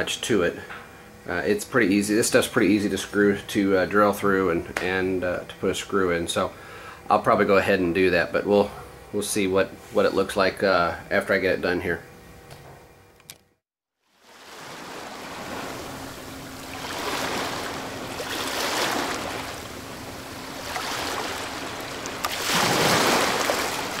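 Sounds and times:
click: 0:13.2 - 0:13.4
ocean waves washing in: 0:14.1 - 0:24.0.

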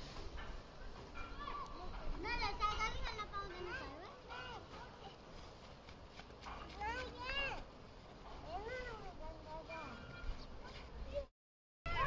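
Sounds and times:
faint children's voices: 0:01.2 - 0:05.7, 0:06.4 - 0:11.3.

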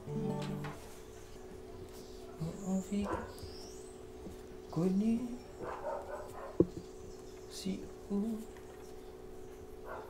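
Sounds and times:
man singing softly: 0:02.4 - 0:03.4, 0:04.7 - 0:05.7, 0:07.5 - 0:08.7.

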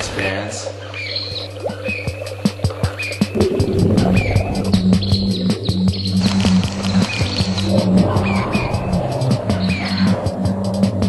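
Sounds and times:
high chirping glides: 0:00.8 - 0:10.8
electronic music with beat: 0:01.3 - 0:11.0.

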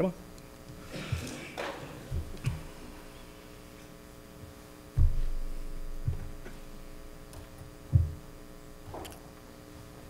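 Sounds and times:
mains hum: 0:00.0 - 0:10.0
loud low thumps: 0:04.9 - 0:07.3.

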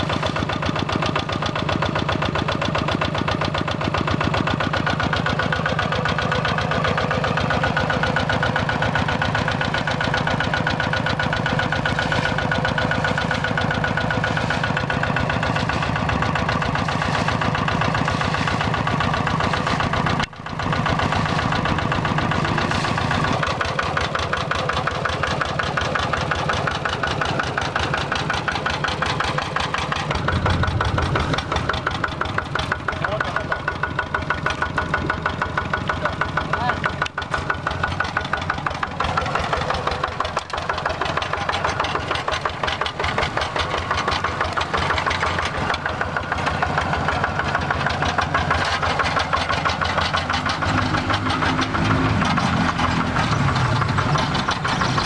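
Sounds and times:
diesel tractor engine knocking: 0:00.0 - 0:55.0.

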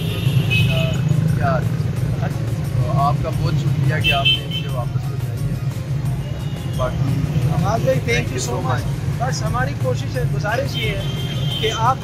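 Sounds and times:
motorcycles and cars passing: 0:00.0 - 0:12.0
voices: 0:00.0 - 0:12.0.

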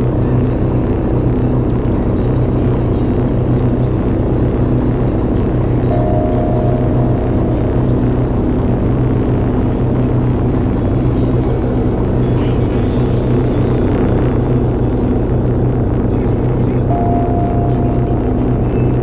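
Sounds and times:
synthesizer drone: 0:00.0 - 0:19.0
short higher synth tone: 0:05.9 - 0:08.9, 0:16.9 - 0:19.0.

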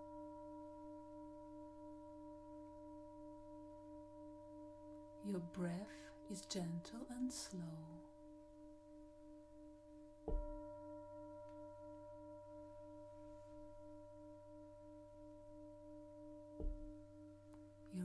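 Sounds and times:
singing bowl ringing: 0:00.0 - 0:18.0.

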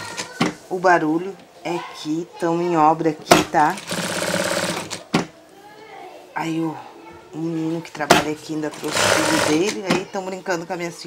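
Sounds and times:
sewing machine running: 0:03.8 - 0:05.0, 0:08.7 - 0:09.8.

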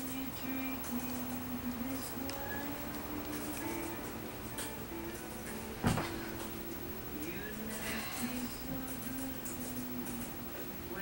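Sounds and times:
background music: 0:00.0 - 0:11.0
television audio: 0:00.0 - 0:11.0.

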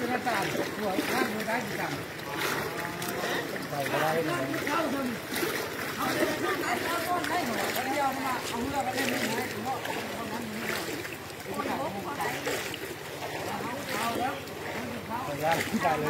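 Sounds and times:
people wading through water: 0:00.0 - 0:16.0
voices talking: 0:00.0 - 0:16.0.

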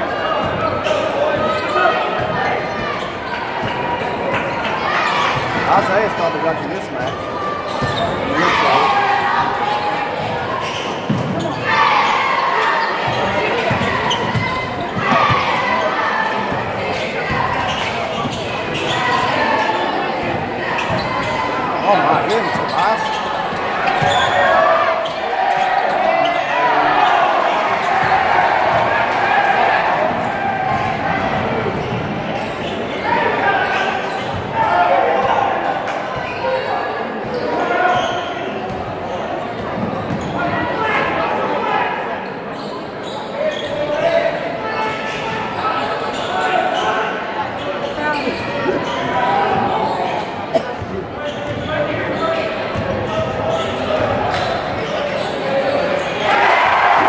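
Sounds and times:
crowd chatter and shouting: 0:00.0 - 0:57.0.

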